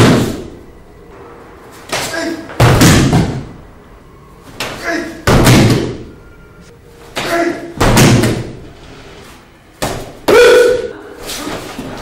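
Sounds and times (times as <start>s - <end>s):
person shouting: 4.8s - 5.2s, 7.2s - 7.8s, 10.3s - 11.0s.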